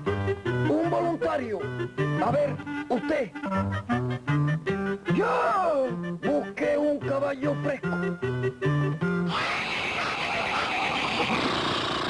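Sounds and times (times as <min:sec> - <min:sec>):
hissing rush of noise: 0:09.3 - 0:12.0.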